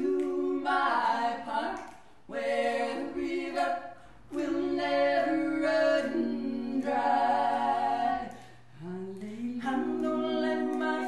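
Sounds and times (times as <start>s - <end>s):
women singing a cappella: 0.0s - 11.0s.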